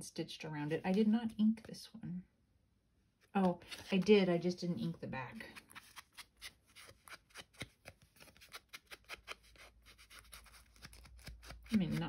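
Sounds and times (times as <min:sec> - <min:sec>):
cardstock tags rustling: 0:03.3 - 0:12.0.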